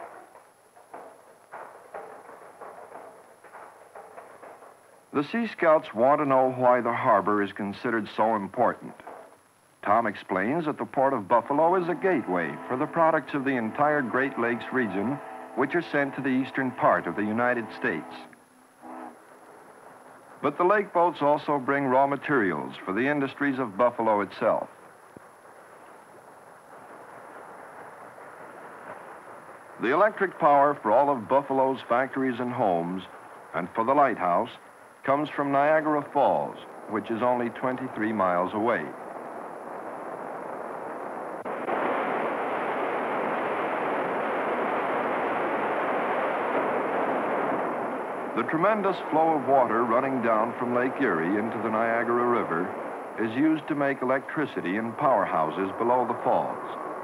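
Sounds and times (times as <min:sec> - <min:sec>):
film soundtrack hiss: 0:00.0 - 0:57.0
thin steady high whine: 0:00.0 - 0:57.0
man speaking: 0:05.2 - 0:09.0, 0:09.8 - 0:18.3, 0:20.4 - 0:24.7, 0:29.8 - 0:39.0, 0:48.4 - 0:56.8.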